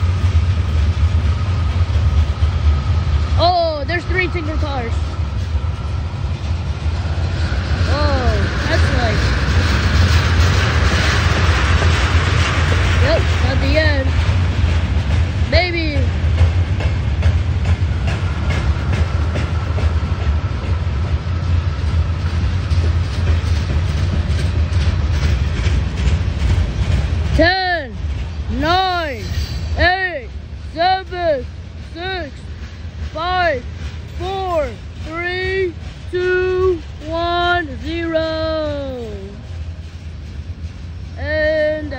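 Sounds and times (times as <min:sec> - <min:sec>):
freight train rumbling past: 0:00.0 - 0:41.9.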